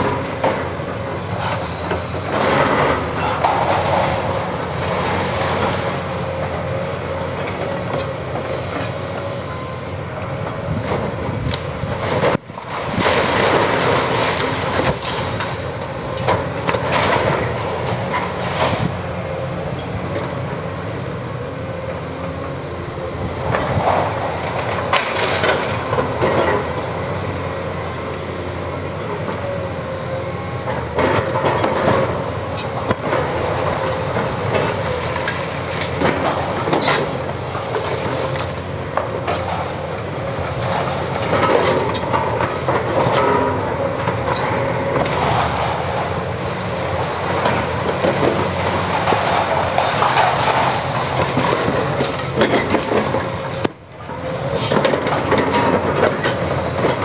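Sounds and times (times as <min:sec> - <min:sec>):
excavator engine whining: 0:00.0 - 0:57.0
falling debris crashing: 0:32.9 - 0:53.3.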